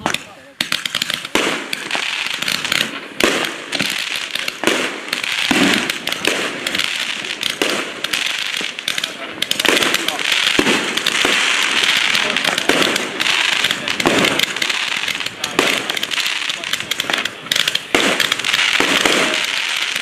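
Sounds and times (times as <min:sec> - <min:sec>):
firework hiss: 0:00.0 - 0:20.0
firework launch thumps and pops: 0:00.0 - 0:20.0.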